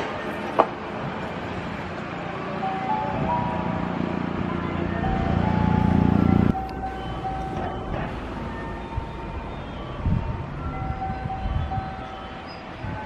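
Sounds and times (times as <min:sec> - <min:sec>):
electric train passing: 0:00.0 - 0:13.0
steady tones shifting in pitch: 0:02.5 - 0:13.0.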